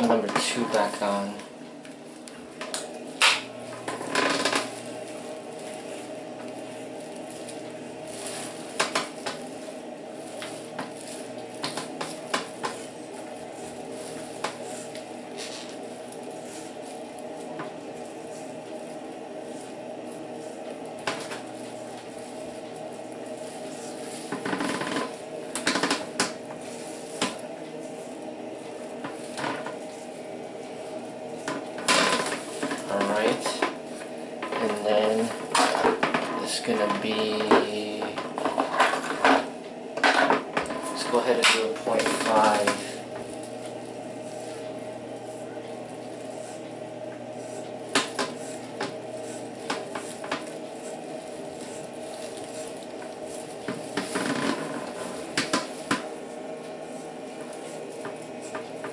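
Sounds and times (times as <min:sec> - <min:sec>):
electric hair clipper buzzing: 0:02.3 - 0:27.5, 0:41.0 - 0:56.2.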